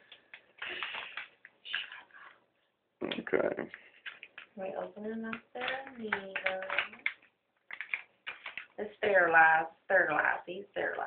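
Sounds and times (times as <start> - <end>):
person speaking: 3.0 - 7.3.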